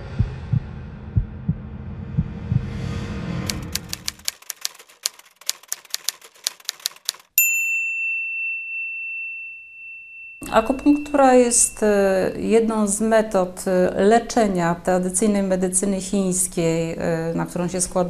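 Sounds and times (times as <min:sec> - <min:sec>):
low double thumps: 0:00.0 - 0:03.8
typewriter key clacks: 0:03.5 - 0:07.4
typewriter bell ding: 0:06.0 - 0:12.2.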